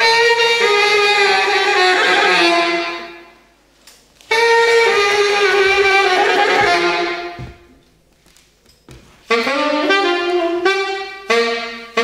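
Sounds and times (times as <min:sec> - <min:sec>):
tenor saxophone: 0:00.0 - 0:03.3, 0:04.3 - 0:07.4, 0:09.2 - 0:12.0.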